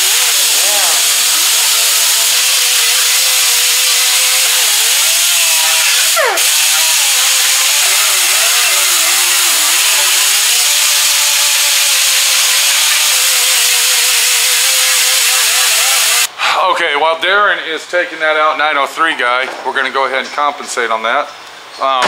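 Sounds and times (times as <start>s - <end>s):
pneumatic grinder on metal: 0.0s - 16.3s.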